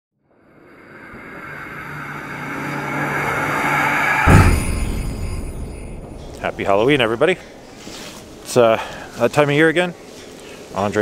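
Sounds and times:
low steady drone: 0.3 - 6.2
whooshing riser: 0.3 - 6.3.

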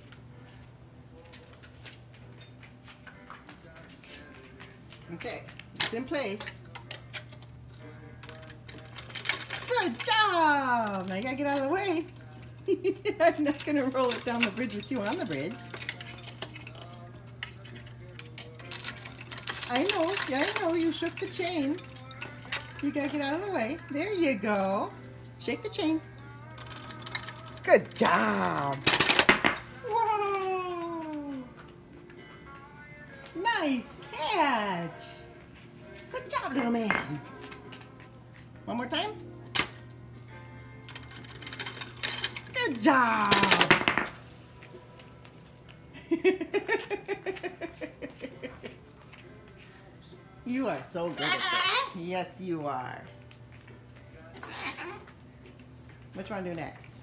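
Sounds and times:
metal chain clinking: 13.5 - 23.9, 40.8 - 44.4.

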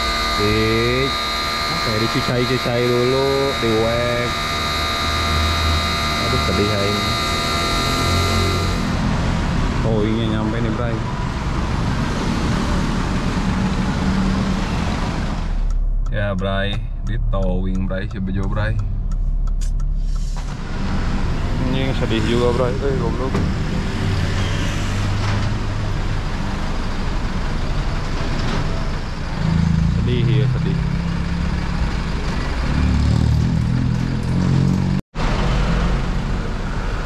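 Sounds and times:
street traffic noise: 0.0 - 37.0
truck engine running: 0.0 - 37.0.

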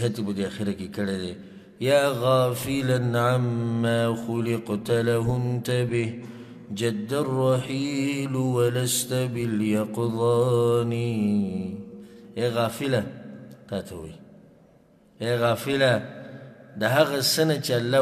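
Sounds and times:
man chanting verse: 0.0 - 14.2, 15.2 - 18.0.

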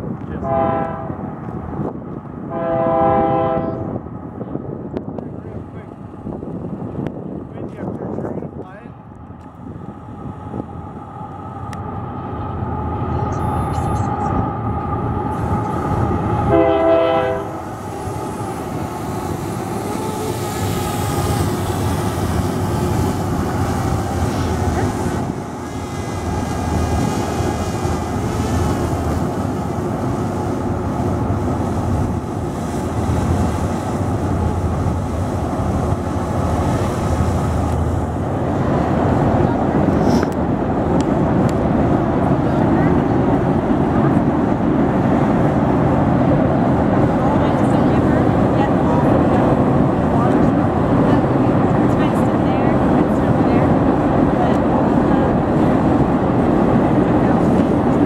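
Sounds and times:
train rumbling by: 0.0 - 58.0
distant train horn: 0.4 - 1.2, 2.5 - 3.9, 16.3 - 18.0.

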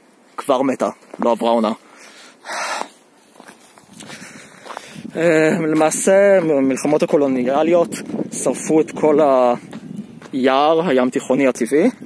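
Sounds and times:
faint footsteps: 0.8 - 11.3.

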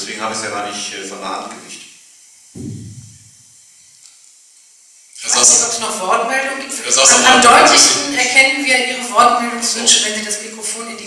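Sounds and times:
faint steady hiss: 0.0 - 11.0
low muffled thump: 2.6 - 3.4.

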